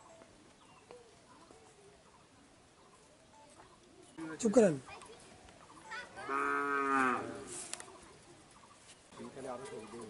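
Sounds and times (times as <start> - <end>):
long animal call: 6.2 - 7.6.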